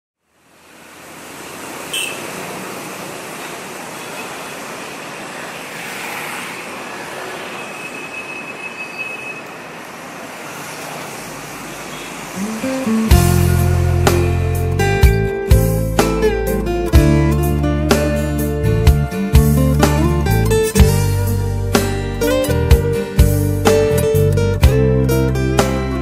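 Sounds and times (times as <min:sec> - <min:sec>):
wind and road noise: 0:00.2 - 0:15.6.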